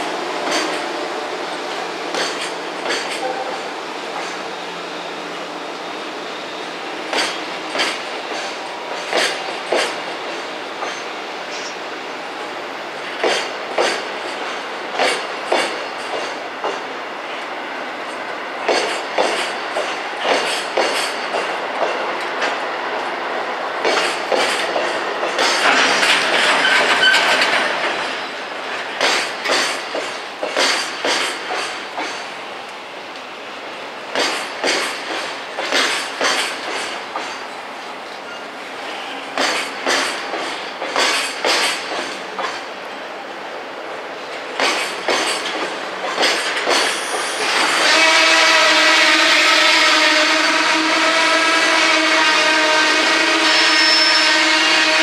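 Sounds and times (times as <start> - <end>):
train wheels clacking over rail joints: 0.4 - 4.4, 7.0 - 11.8, 13.0 - 16.9, 18.1 - 23.2, 23.8 - 32.4, 34.1 - 38.4, 39.2 - 42.8, 44.2 - 55.0
high metallic squeal: 25.9 - 27.5, 53.5 - 54.4.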